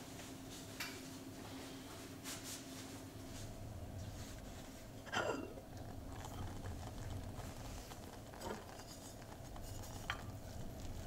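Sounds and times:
low steady hum: 0.0 - 11.0
wooden spoon stirring rice: 5.8 - 11.0.

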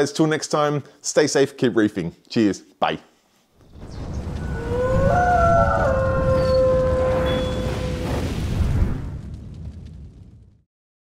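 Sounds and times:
low rumble: 3.8 - 10.6.

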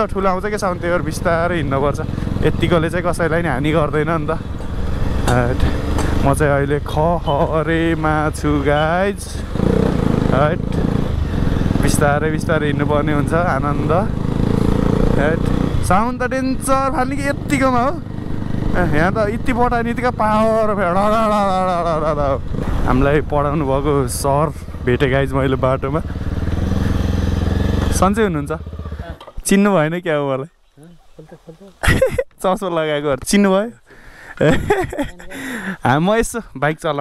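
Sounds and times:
motorcycle engine running: 0.0 - 29.3
person talking: 5.3 - 9.4, 29.0 - 33.8, 34.4 - 37.0.

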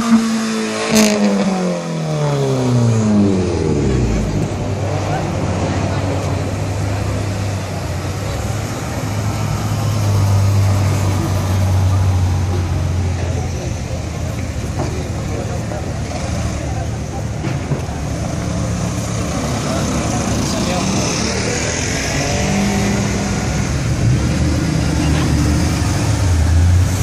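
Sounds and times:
sports car engine pulling away: 18.0 - 27.0.

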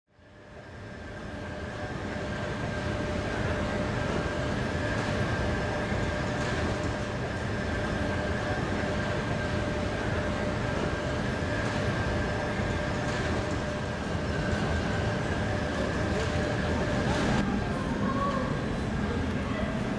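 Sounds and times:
electric train electrical hum: 0.1 - 19.9.

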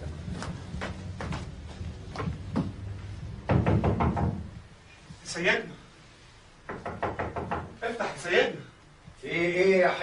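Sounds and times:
rapid knocking on door: 3.4 - 4.6, 6.7 - 7.8.

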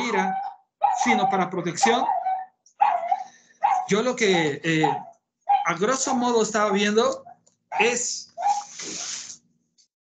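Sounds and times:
small dog yipping: 0.1 - 6.2, 7.2 - 8.8.

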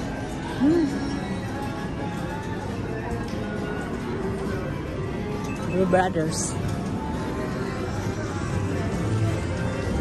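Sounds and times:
background music: 0.0 - 10.0
murmur of voices: 0.0 - 10.0.

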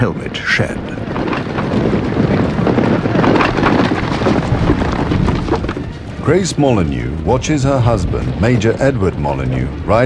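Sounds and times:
horses galloping: 0.0 - 10.0.

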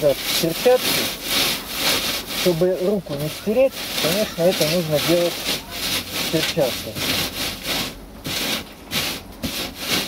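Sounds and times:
moss rasping on metal mesh: 0.0 - 10.0.

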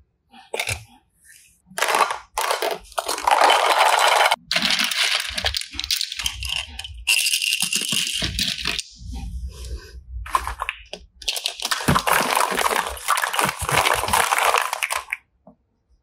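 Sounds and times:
plastic cubes clattering: 1.7 - 8.9, 10.3 - 15.2.

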